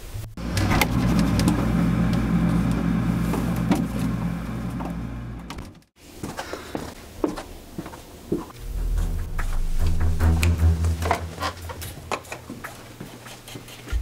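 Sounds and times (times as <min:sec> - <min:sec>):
steady low hum: 0:00.0 - 0:05.8, 0:08.5 - 0:13.1.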